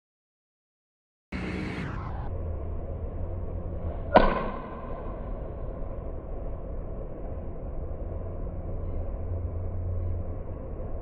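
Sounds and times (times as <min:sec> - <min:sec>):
golf club striking ball: 0:04.1 - 0:05.2.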